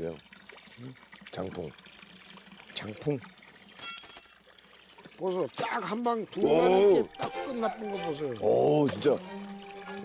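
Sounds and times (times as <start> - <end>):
water trickling into stone basin: 0.0 - 10.0
steel bowl clinking: 3.8 - 4.6.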